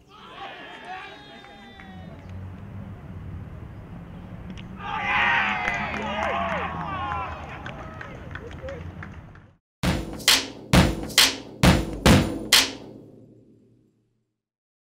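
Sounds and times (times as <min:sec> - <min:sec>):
sharp percussive hits: 0:09.8 - 0:13.1.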